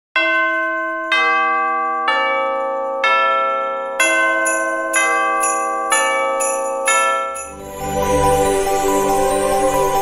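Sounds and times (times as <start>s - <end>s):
ringing bell strikes: 0.2s - 8.3s.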